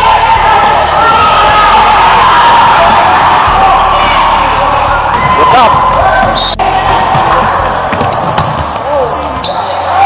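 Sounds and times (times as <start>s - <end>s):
players and spectators voices: 0.0s - 10.0s
basketball bouncing on floor: 7.9s - 8.8s.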